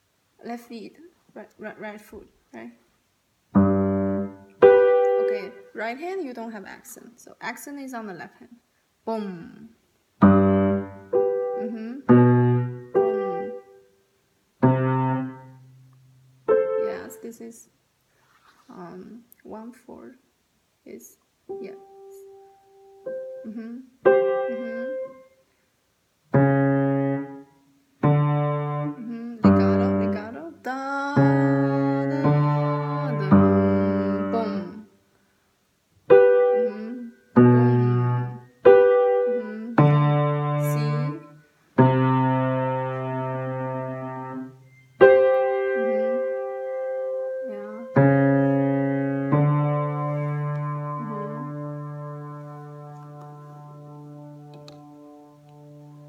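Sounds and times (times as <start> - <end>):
piano chords played slowly: 3.6 - 5.6, 10.2 - 13.8, 14.6 - 17.2, 21.5 - 25.3, 26.3 - 30.4, 31.1 - 34.8, 36.1 - 56.0.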